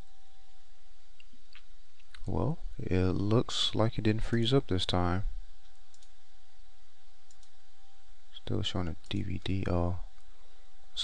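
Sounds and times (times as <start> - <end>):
steady low hum: 0.0 - 11.0
computer mouse clicks: 5.6 - 6.2, 7.3 - 7.6.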